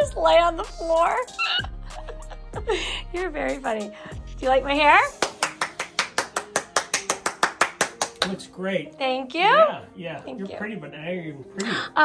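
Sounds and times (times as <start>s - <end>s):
person clapping: 5.1s - 8.4s.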